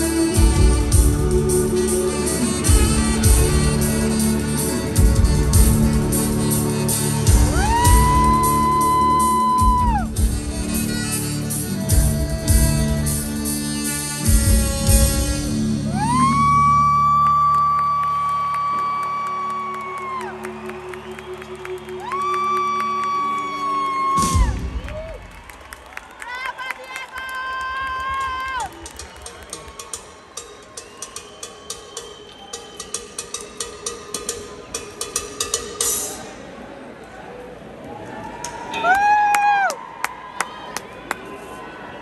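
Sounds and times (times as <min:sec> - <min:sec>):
crowd clapping and cheering: 0:02.4 - 0:11.1, 0:15.7 - 0:33.4, 0:37.8 - 0:42.0.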